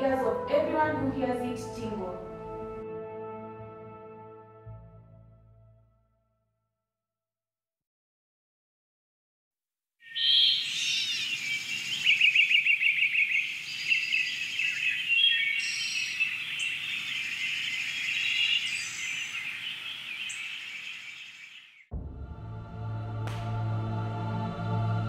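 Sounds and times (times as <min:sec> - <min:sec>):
songbirds singing and chirping: 0:10.0 - 0:21.9.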